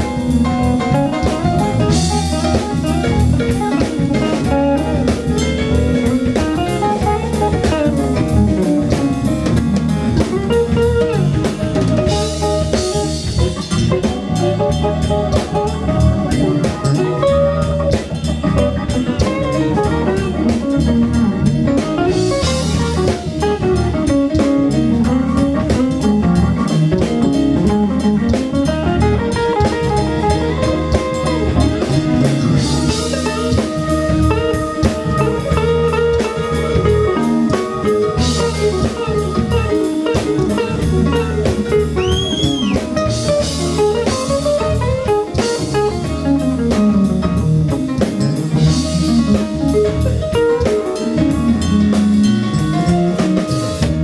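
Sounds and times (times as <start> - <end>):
blues band playing: 0.0 - 54.0.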